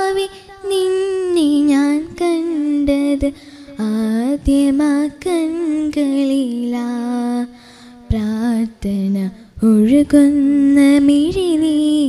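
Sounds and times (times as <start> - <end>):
girl singing into microphone: 0.0 - 12.0.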